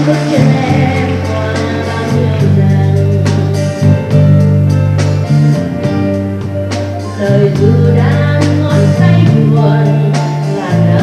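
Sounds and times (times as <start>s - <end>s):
guitar: 0.0s - 11.0s
keyboard chords: 0.0s - 11.0s
low bass: 0.0s - 11.0s.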